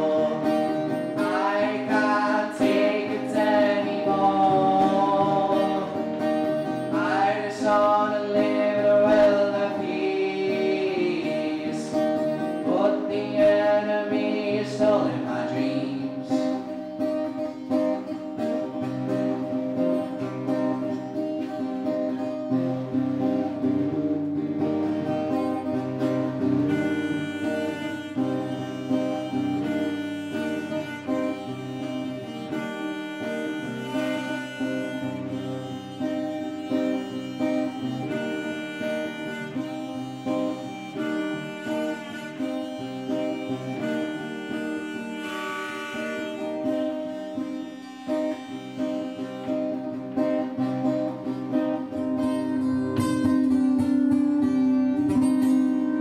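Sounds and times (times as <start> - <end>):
acoustic guitar music: 0.0 - 56.0.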